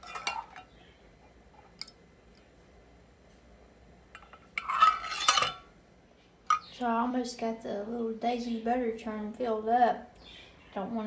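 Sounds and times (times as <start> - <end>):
ladle clattering scrape: 0.0 - 0.7, 4.2 - 5.7.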